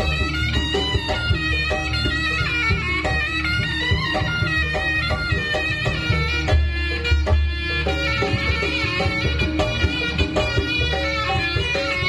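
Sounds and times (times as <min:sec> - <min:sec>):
reedy shawm melody: 0:00.0 - 0:12.0.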